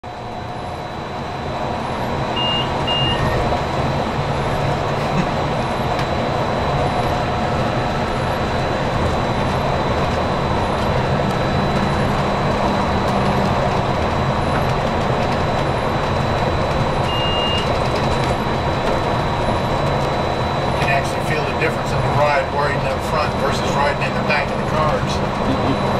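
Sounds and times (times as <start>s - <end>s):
monorail rumble and motor hum: 0.0s - 25.9s
short beeps: 2.4s - 3.4s, 17.0s - 17.7s.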